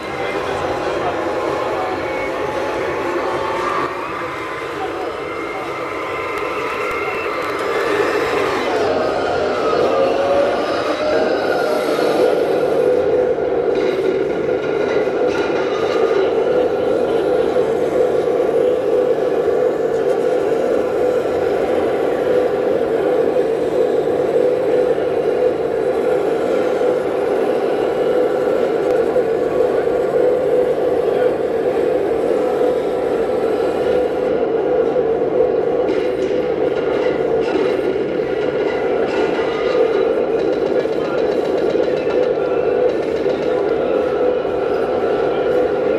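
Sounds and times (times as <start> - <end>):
people chatting: 0.0 - 13.4, 15.2 - 36.0.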